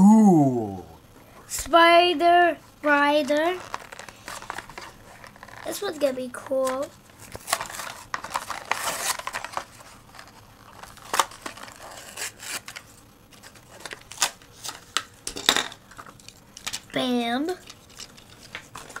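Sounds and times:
plastic blister pack tearing: 3.2 - 15.1.

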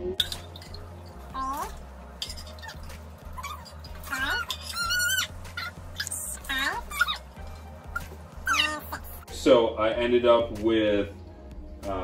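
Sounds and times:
pet whining: 1.3 - 9.2.

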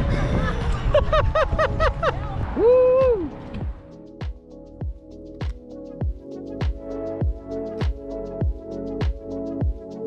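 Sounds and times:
wind buffeting microphone: 0.0 - 3.9
background music: 1.3 - 10.0
person whooping: 2.6 - 3.3.

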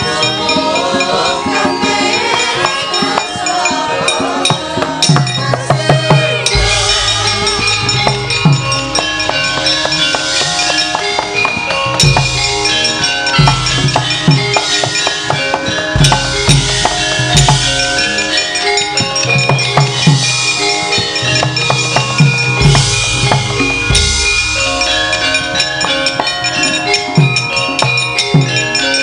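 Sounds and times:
drum strokes: 0.0 - 29.0
metal bar instruments ringing: 0.0 - 29.0
deep gong stroke: 6.5 - 11.1, 22.6 - 26.6.

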